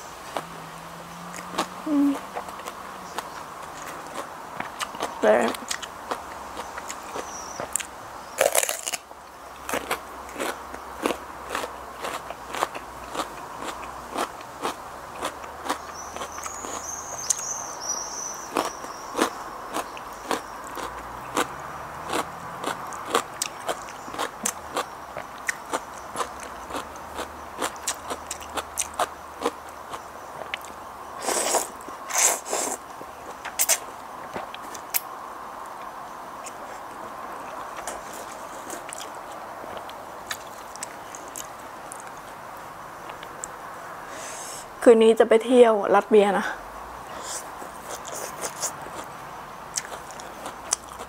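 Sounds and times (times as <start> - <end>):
crunchy vegetable chewing: 0.0 - 44.6, 47.1 - 51.0.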